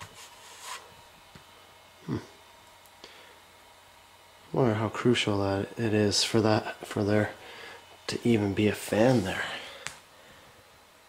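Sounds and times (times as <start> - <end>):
faint recorder hum and whine: 0.0 - 11.0.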